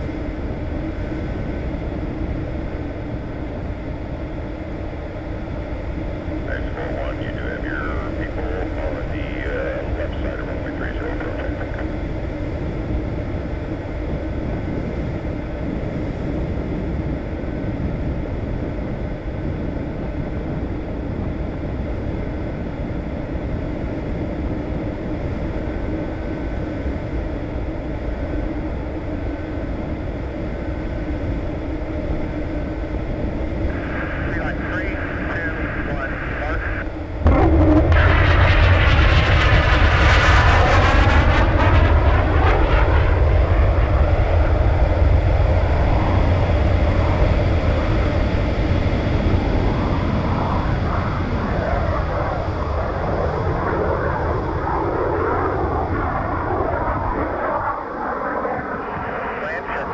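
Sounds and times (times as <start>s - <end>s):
aircraft engine drone: 0.0s - 59.9s
muffled radio voice: 6.4s - 11.9s, 33.7s - 36.9s, 58.8s - 59.9s.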